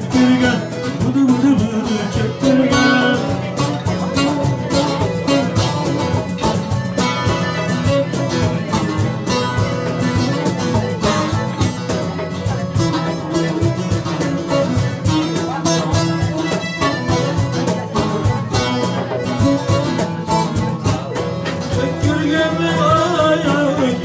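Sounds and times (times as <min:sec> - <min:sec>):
hand drum rhythm: 0:00.0 - 0:24.0
long-necked lute plucked notes: 0:00.0 - 0:24.0.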